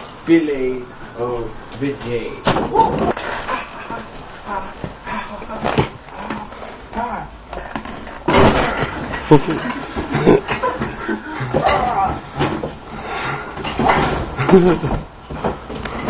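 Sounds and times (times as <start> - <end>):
young men laughing: 3.2 - 5.6, 9.1 - 12.2, 14.3 - 15.0.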